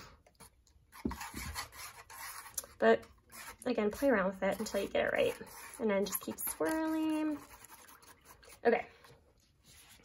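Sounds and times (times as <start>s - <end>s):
straw scraping a bowl: 0.9s - 9.1s
person speaking: 2.7s - 7.7s.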